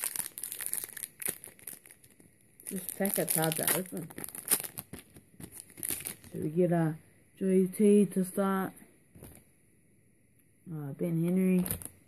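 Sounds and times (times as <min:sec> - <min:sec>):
foil packet crinkling: 0:00.0 - 0:06.4.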